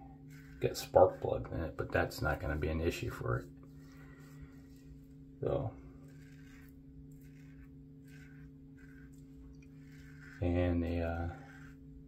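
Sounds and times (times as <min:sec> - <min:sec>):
razor scraping stubble: 0:00.0 - 0:12.0
steady low hum: 0:00.0 - 0:12.0.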